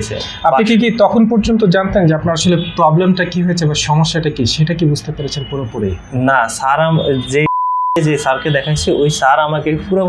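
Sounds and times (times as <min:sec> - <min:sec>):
man speaking: 0:00.0 - 0:10.0
censor bleep: 0:07.2 - 0:08.1.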